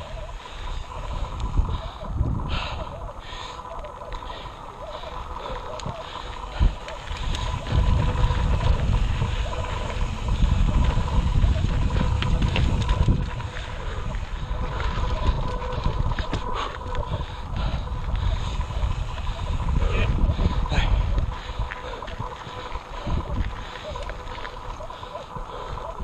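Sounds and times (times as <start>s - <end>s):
bike clicks and rattles: 0.0s - 26.0s
wind buffeting microphone: 0.0s - 26.0s.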